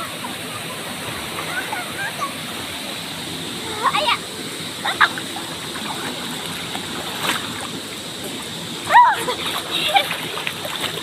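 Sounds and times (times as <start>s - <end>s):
flowing river water: 0.0s - 11.0s
water splashing: 0.0s - 11.0s.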